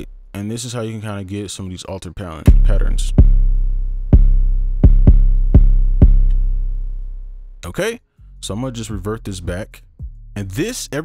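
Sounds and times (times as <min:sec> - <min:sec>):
kick drum hits: 0:02.5 - 0:06.7.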